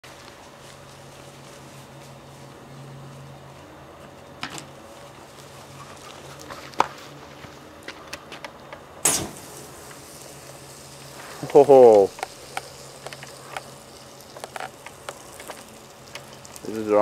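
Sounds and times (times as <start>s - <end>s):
fire flaring burst: 9.0s - 16.2s
wood fire crackling and popping: 9.0s - 17.0s.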